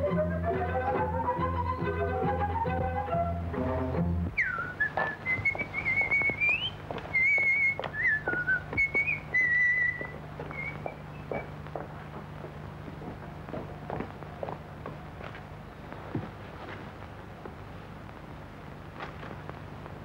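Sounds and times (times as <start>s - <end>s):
bowed string music: 0.0s - 4.3s
person whistling: 4.4s - 11.4s.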